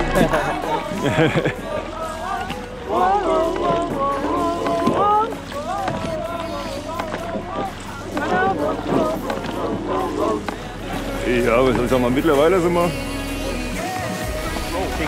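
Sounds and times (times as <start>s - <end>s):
background music: 0.0s - 15.0s
people's voices: 0.0s - 15.0s.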